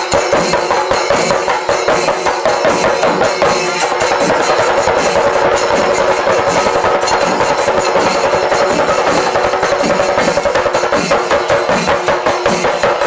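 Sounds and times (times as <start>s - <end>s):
drums beaten with sticks: 0.0s - 13.0s.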